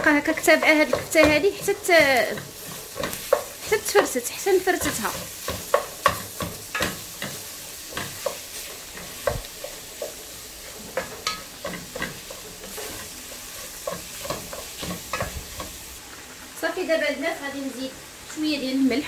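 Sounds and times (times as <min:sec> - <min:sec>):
light frying sizzle: 0:00.0 - 0:19.0.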